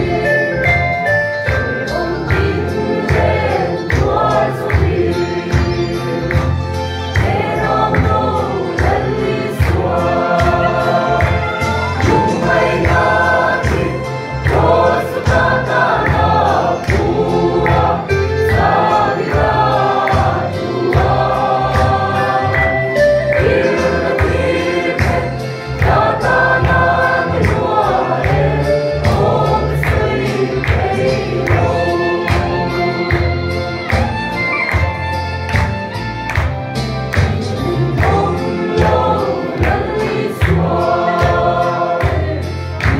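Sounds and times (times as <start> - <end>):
choir singing a hymn: 0.0 - 34.3, 37.2 - 42.9
accompaniment with bass and beat: 0.0 - 42.9.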